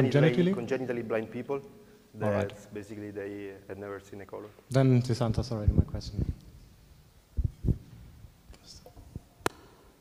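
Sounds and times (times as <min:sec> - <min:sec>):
microphone handling noise: 0:07.4 - 0:08.2.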